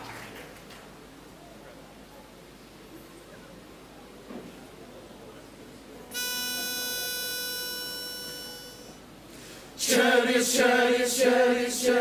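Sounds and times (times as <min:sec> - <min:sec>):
pitch pipe reedy note: 0:06.1 - 0:09.0.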